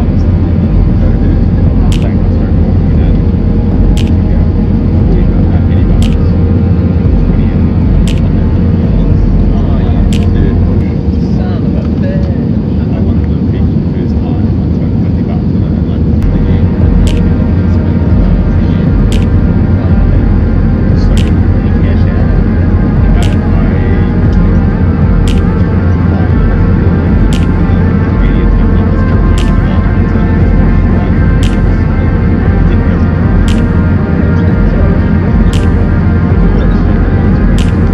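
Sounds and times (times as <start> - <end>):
jet engine rumble: 0.0 - 37.9
steady whine: 0.0 - 37.9
sharp tick: 4.0 - 4.2, 23.2 - 23.5, 25.2 - 25.5, 29.4 - 29.6, 31.4 - 31.6, 33.5 - 33.7, 35.5 - 35.8, 37.6 - 37.9.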